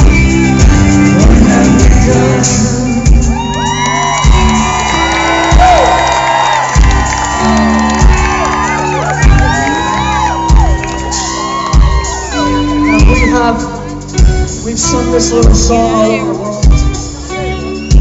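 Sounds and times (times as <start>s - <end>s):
heavy drum beat: 0.0s - 17.3s
live rock band playing: 0.0s - 18.0s
crowd whooping and shouting: 3.2s - 13.7s.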